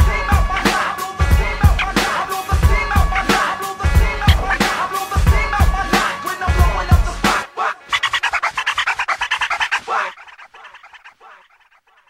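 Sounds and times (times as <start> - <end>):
hip hop backing track: 0.0 - 8.0.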